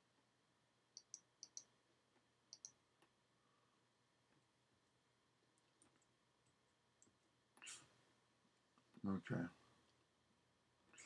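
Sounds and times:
computer mouse clicks: 1.0 - 1.7, 2.5 - 3.1.

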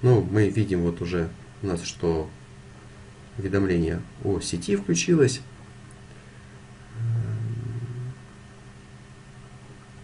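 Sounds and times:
man humming: 6.8 - 8.4.

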